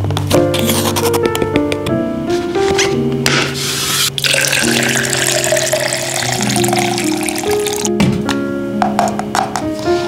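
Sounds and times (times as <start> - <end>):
background music: 0.0 - 10.0
water pouring into plastic bottle: 4.2 - 7.9.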